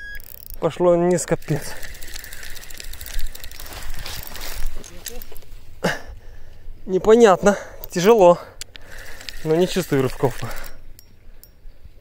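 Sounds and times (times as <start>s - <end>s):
fishing reel clicking: 0.1s - 5.4s, 7.8s - 11.6s.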